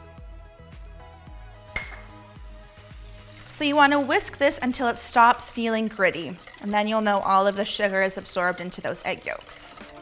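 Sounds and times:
soft background music: 0.0 - 10.0
metal utensil clinking glass bowl: 1.8 - 2.2.

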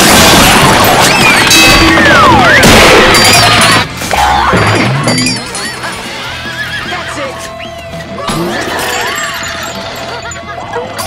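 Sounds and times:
cartoon horse whinnying: 6.1 - 7.1.

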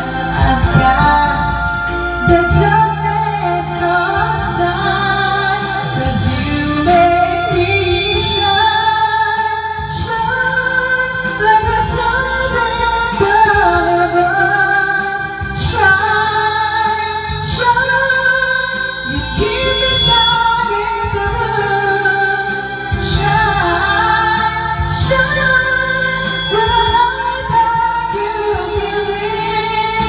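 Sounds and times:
band accompaniment: 0.0 - 30.0
woman singing pop song: 0.0 - 30.0.

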